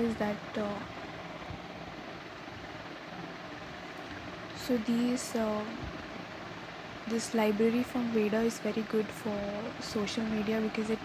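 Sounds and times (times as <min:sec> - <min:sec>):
room tone hiss and hum: 0:00.0 - 0:11.0.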